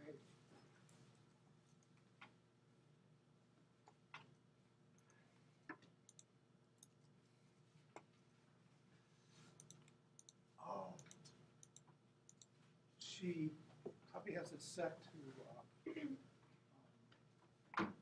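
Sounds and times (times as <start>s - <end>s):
computer mouse clicks: 5.0s - 7.0s, 9.5s - 10.4s, 11.0s - 12.5s.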